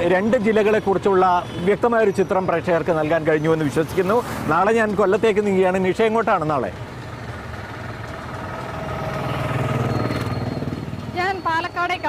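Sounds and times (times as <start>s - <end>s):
vehicle engine passing: 3.4s - 11.2s.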